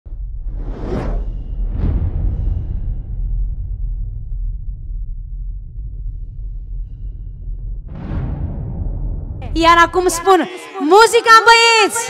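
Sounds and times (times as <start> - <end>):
deep steady rumble: 0.0 - 9.6.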